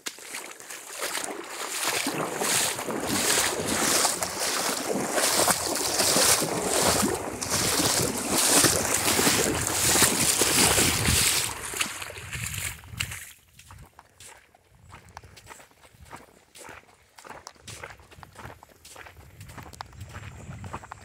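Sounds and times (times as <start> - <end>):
wading through shallow water: 0.0 - 21.0.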